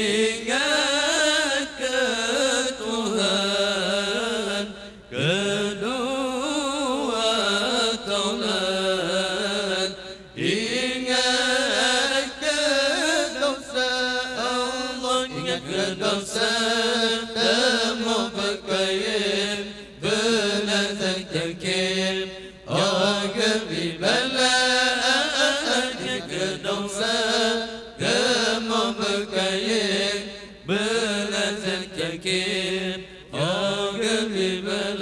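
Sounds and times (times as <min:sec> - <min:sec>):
men chanting into microphones: 0:00.0 - 0:35.0.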